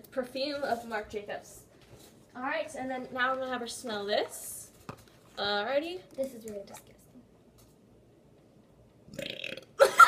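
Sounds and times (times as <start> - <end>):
loud laughter: 9.8 - 10.0.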